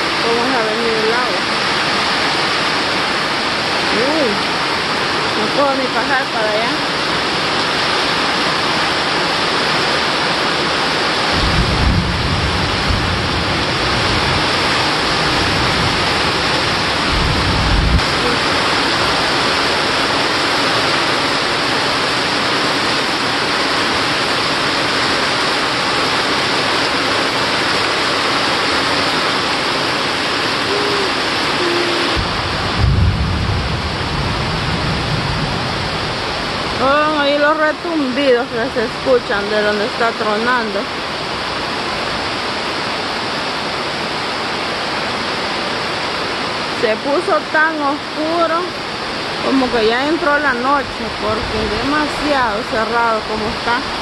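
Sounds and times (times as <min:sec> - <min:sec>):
heavy rain on trees: 0:00.0 - 0:54.0
distant thunder rumbling: 0:11.3 - 0:21.6, 0:30.4 - 0:37.4.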